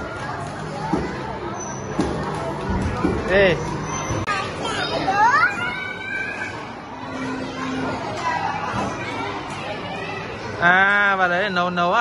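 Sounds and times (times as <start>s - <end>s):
children playing: 0.0s - 12.0s.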